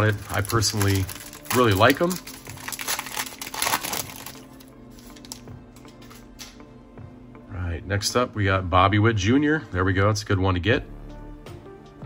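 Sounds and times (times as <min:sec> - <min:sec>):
foil wrapper crinkling: 0:00.0 - 0:05.5.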